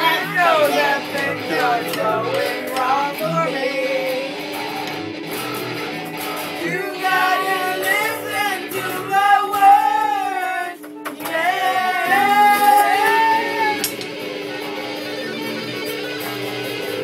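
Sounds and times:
boys singing: 0.0s - 4.6s, 6.6s - 13.8s
electric guitar music: 0.0s - 17.0s.

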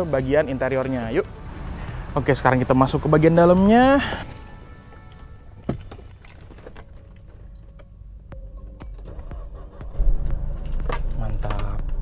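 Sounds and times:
car keys jangling: 4.2s - 8.0s, 8.6s - 12.0s
steady low rumble: 9.4s - 12.0s.

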